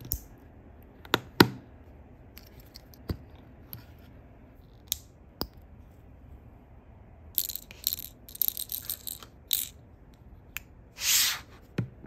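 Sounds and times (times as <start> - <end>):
plastic pieces clicking and rattling: 7.4 - 9.8.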